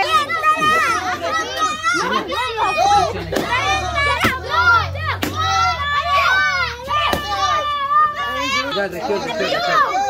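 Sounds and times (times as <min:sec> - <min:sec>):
children shouting and cheering: 0:00.0 - 0:10.0
stick striking pinata: 0:05.2 - 0:05.5, 0:07.0 - 0:07.4.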